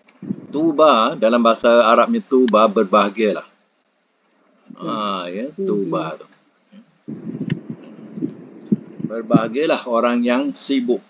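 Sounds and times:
muffled low rumble: 0:00.0 - 0:01.6, 0:04.7 - 0:06.3, 0:07.0 - 0:09.8
soft irregular thumps: 0:06.1 - 0:09.6.

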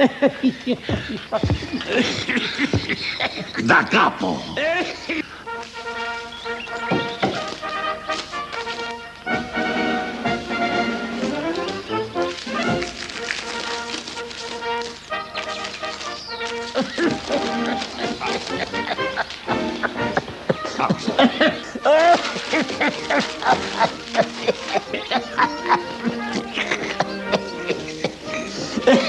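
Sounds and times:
brass band playing: 0:05.0 - 0:29.0.

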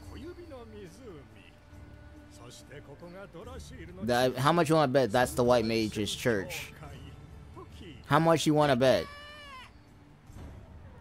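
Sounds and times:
faint dialogue: 0:00.0 - 0:09.6.

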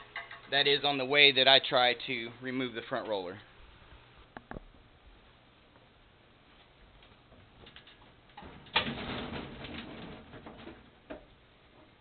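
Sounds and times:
clattering and scraping of machine parts: 0:07.6 - 0:11.0.

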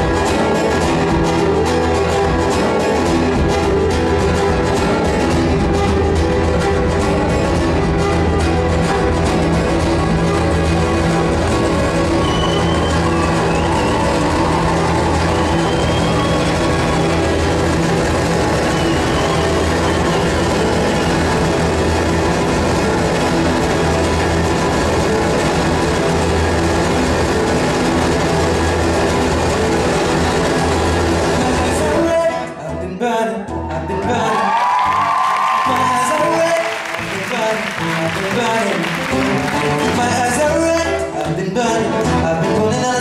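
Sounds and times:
acoustic guitar music through pa: 0:00.0 - 0:43.0.

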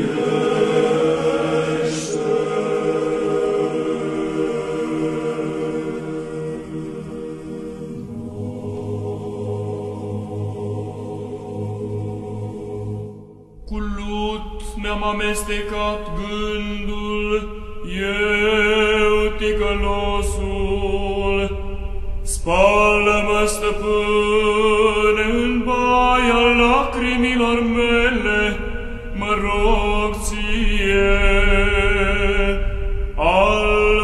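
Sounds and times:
chanting with long held notes: 0:00.0 - 0:34.0.

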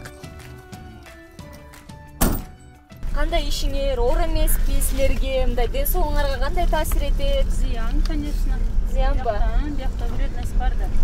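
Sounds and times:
quiet background music: 0:00.0 - 0:07.6
metal van door slamming: 0:02.1 - 0:02.7.

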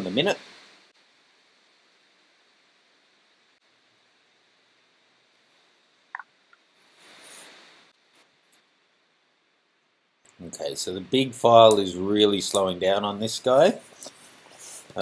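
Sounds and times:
faint room hiss: 0:00.0 - 0:15.0.

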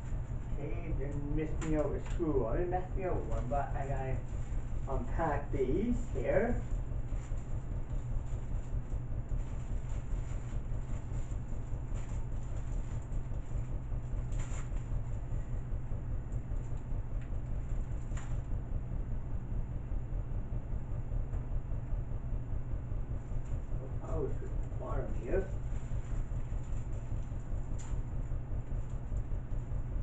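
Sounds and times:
low background rumble: 0:00.0 - 0:30.0.

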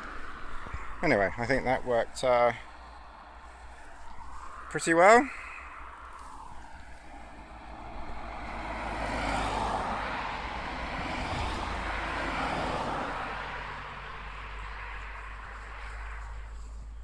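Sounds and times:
distant vehicle engine passing: 0:00.0 - 0:17.0.

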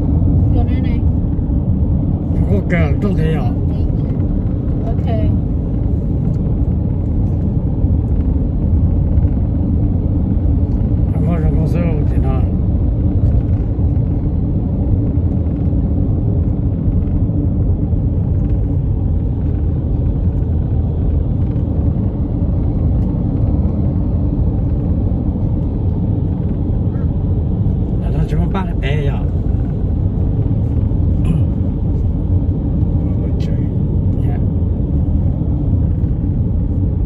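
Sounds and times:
car cabin road and engine rumble: 0:00.0 - 0:37.0.

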